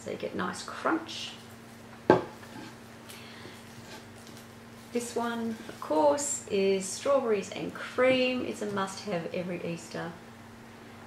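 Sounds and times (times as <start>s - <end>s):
faint foil rustling: 1.3s - 6.3s.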